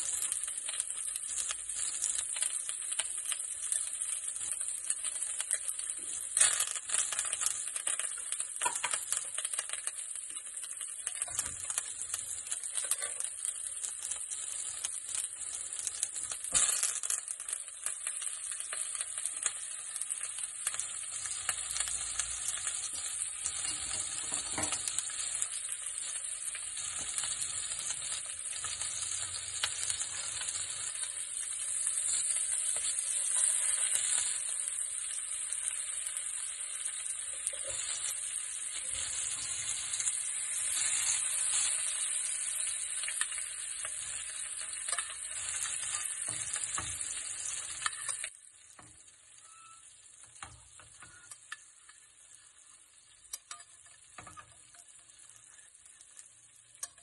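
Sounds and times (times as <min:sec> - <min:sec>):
steak sizzling in butter: 0:00.0 - 0:57.0.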